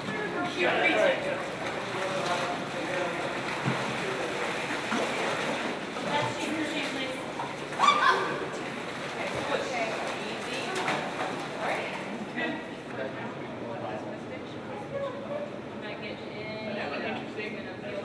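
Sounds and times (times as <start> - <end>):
water splashing and sloshing: 0.0 - 13.5.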